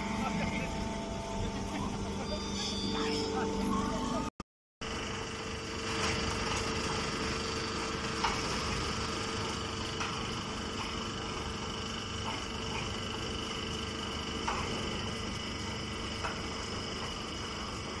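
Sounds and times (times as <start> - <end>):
machine whining tones: 0.0 - 4.3
baling machinery humming: 0.0 - 18.0.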